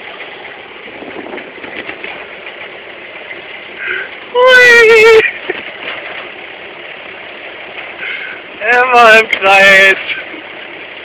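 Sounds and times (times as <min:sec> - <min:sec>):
forklift running: 0:00.0 - 0:11.0.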